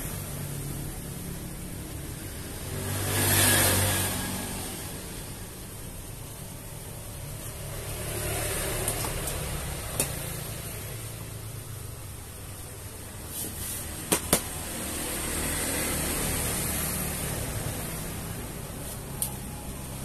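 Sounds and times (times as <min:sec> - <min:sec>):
vinyl rustling rubbed by hand: 0:13.2 - 0:14.0.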